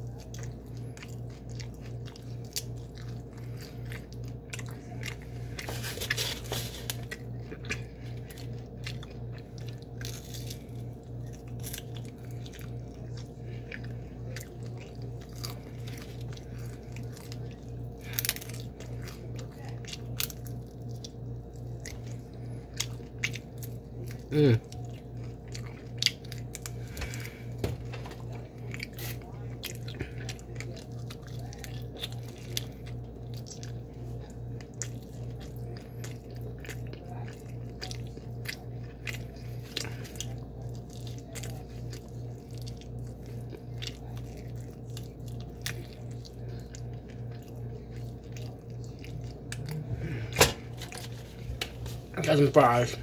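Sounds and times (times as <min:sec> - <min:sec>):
crunching fried chicken: 0:00.0 - 0:53.0.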